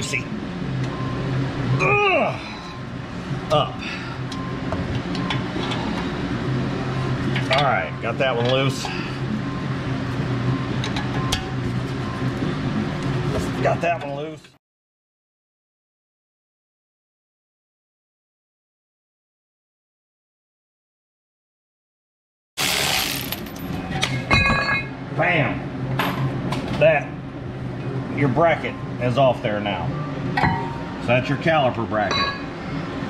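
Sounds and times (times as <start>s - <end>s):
man grunting: 1.8s - 2.6s.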